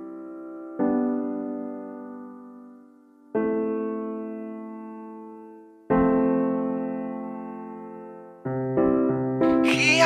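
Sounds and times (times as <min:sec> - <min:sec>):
soft piano chords: 0:00.0 - 0:10.0.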